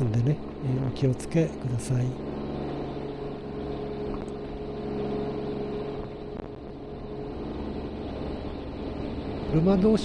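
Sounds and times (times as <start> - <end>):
car engine hum: 0.0 - 10.0
road noise: 0.0 - 10.0.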